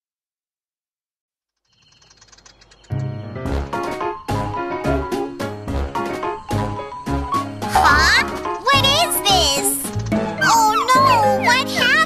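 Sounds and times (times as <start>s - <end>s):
cartoon birds chirping: 1.6s - 12.0s
children's song music: 3.2s - 12.0s.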